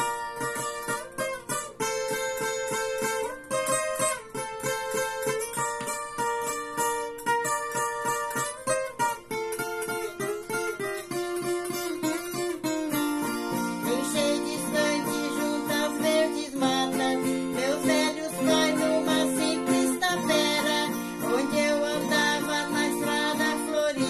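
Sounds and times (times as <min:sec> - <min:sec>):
folk guitar strummed chords: 0:00.0 - 0:24.0.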